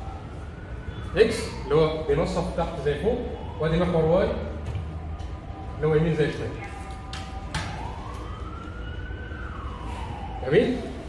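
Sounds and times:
siren wail: 0:00.0 - 0:11.0.

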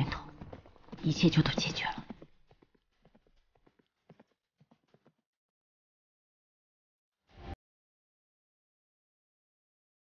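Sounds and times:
horse hooves clip-clopping: 0:00.0 - 0:05.2.

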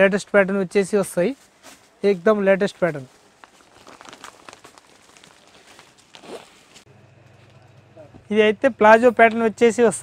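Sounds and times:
packaging rustling and clicking: 0:03.2 - 0:06.8
low steady hum: 0:04.5 - 0:10.0.

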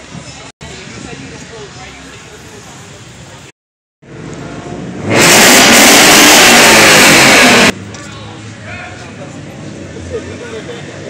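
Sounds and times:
car engine revving: 0:04.0 - 0:07.8.

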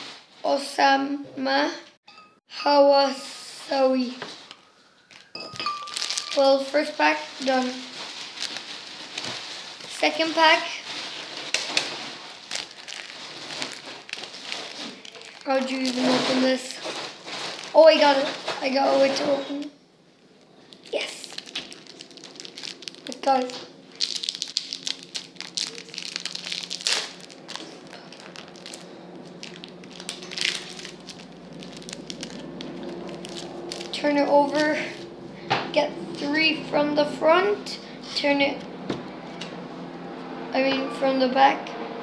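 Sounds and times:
foil card pack crinkling: 0:04.3 - 0:19.2, 0:20.7 - 0:35.1
low hum: 0:17.0 - 0:42.0.

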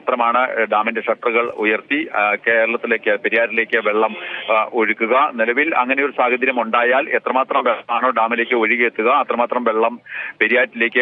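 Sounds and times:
man speaking over phone line: 0:00.0 - 0:11.0.

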